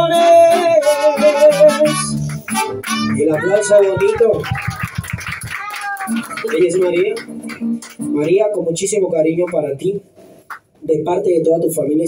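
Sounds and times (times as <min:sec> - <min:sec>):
mariachi band playing: 0:00.0 - 0:09.2.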